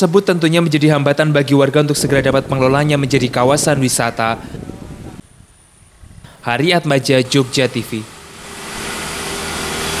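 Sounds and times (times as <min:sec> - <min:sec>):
motorbike engine passing: 0:07.0 - 0:10.0.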